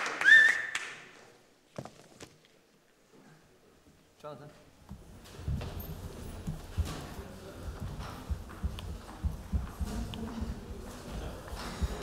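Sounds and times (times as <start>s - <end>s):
dull thuds on wooden stage: 4.9s - 12.0s.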